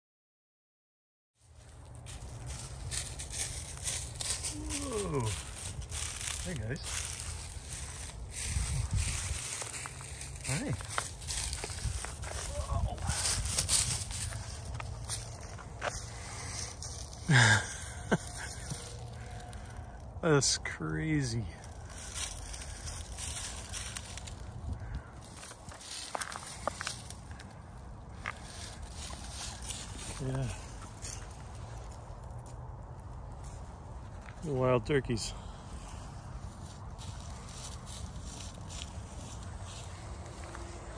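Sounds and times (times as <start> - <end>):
footsteps crunching dry leaves: 1.4 - 20.2, 21.2 - 40.9.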